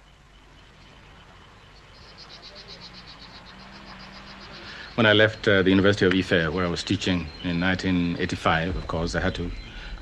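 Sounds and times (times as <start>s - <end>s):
faint outdoor ambience: 0.0s - 10.0s.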